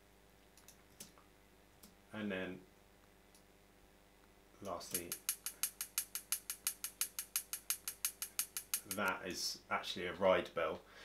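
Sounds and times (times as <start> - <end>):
ride cymbal ticks: 4.9 - 9.2.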